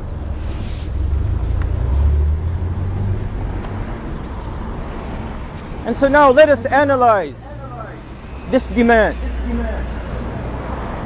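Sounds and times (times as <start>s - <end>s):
brief hiss: 0.4s - 1.2s.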